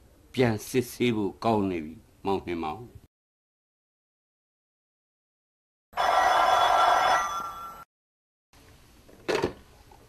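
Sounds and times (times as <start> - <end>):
telephone bell ringing: 6.0 - 7.9.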